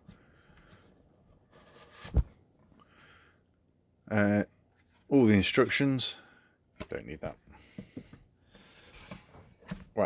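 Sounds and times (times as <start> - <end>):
rustling of foam insert: 0.0 - 2.5, 7.9 - 10.0.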